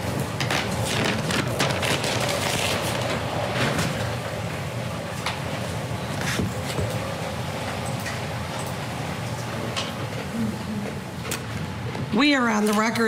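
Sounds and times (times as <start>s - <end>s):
steady low hum: 0.0s - 12.6s.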